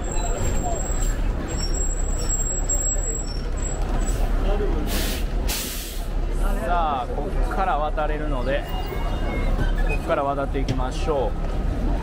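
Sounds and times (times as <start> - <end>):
bus engine rumbling: 0.0 - 12.0
air brake hisses: 4.9 - 6.1.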